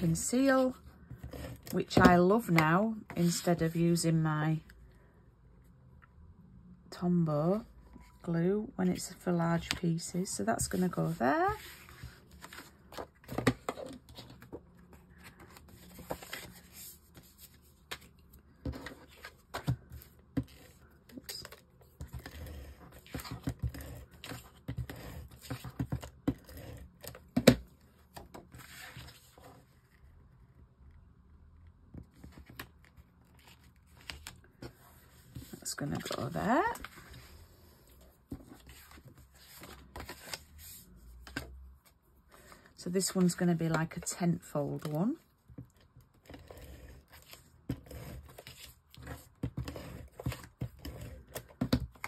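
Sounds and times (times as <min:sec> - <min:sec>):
paper rustling and sliding: 0:10.7 - 0:13.4, 0:15.2 - 0:20.6.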